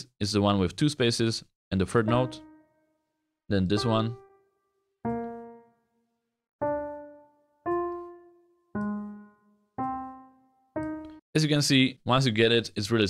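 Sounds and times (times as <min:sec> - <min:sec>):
single piano notes: 0:05.0 - 0:05.8, 0:06.6 - 0:11.2.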